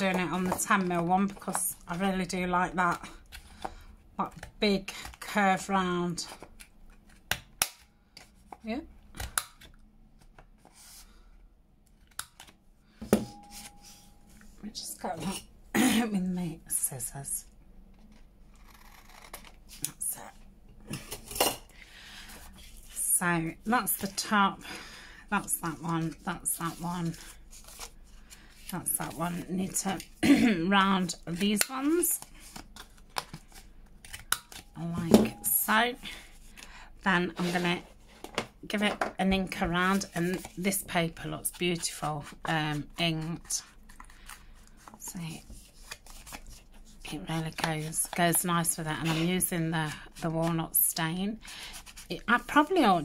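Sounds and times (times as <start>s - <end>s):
paper rustling: 25.5s - 30.2s.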